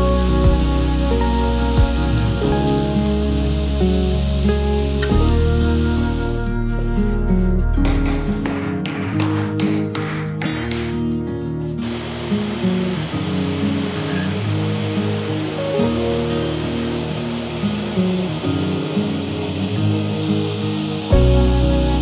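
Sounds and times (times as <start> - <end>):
table saw cutting wood: 0.0 - 6.9, 11.8 - 22.0
background music: 0.0 - 22.0.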